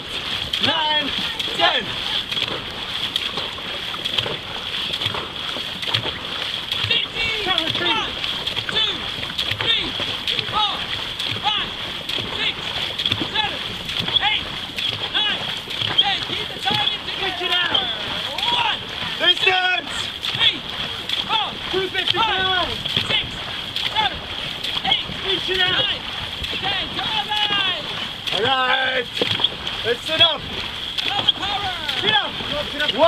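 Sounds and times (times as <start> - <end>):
voices calling out: 0.0 - 33.0
wooden paddles splashing water: 0.0 - 33.0.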